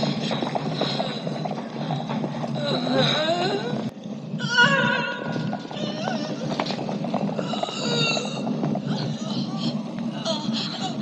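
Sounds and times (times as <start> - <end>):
hooves clattering on stone: 0.0 - 11.0.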